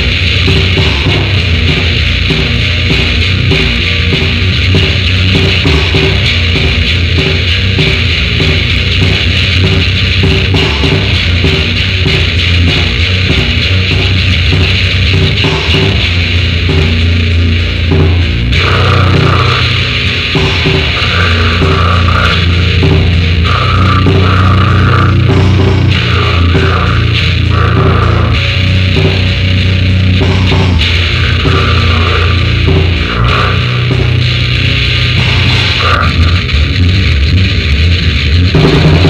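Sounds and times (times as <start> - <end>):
distorted guitars: 0.0 - 39.0
drums: 0.0 - 39.0.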